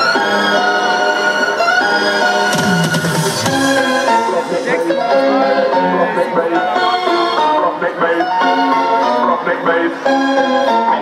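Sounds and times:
live electronic music with synths: 0.0s - 11.0s.

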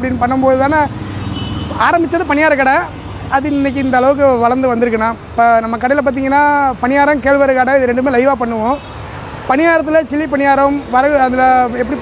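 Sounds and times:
man talking: 0.0s - 1.0s, 1.7s - 8.9s, 9.5s - 12.0s
street traffic rumble: 0.0s - 12.0s.

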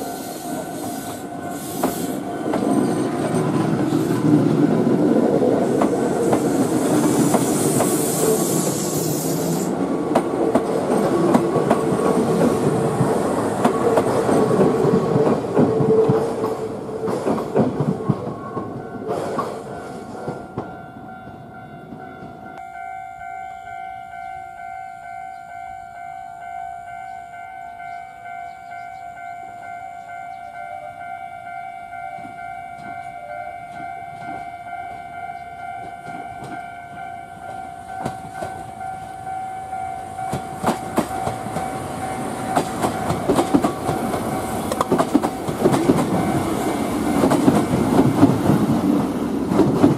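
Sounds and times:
train wheels clattering on rails: 0.9s - 22.6s, 32.1s - 49.9s
level crossing alarm ringing: 19.8s - 43.4s.

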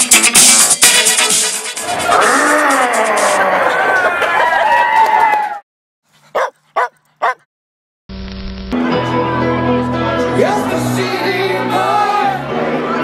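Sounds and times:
music: 0.0s - 3.4s, 8.7s - 13.0s
short dog barks: 6.3s - 7.4s.

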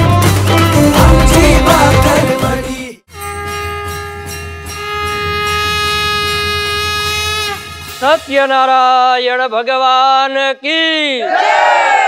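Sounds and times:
conch shell blown: 3.1s - 8.5s.

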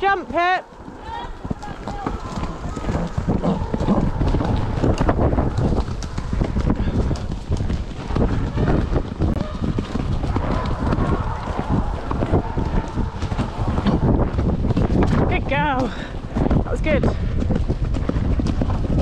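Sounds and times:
horse hoofbeats on soft ground: 0.0s - 19.0s
wind buffeting microphone: 0.0s - 19.0s.

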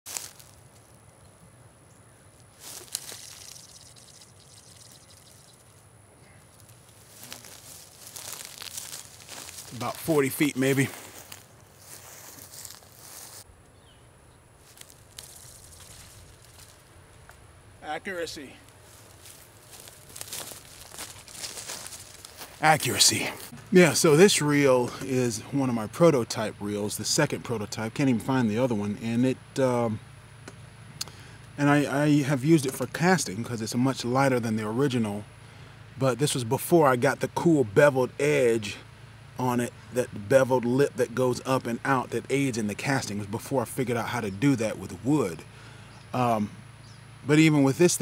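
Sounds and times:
fishing line rustling off reel: 2.5s - 5.9s, 14.6s - 16.9s.

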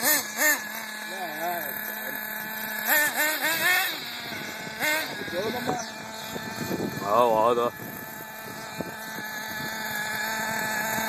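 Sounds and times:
model car engine whining: 0.0s - 11.0s.

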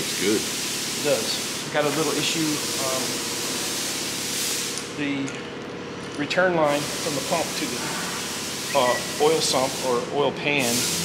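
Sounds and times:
loud steady hiss: 0.0s - 5.2s, 6.6s - 11.0s.

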